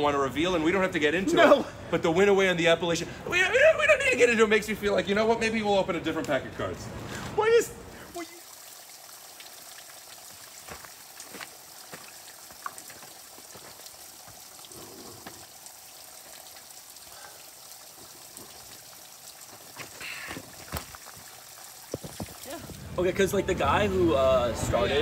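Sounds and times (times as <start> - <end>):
water trickling onto wet stones: 7.2 - 23.4.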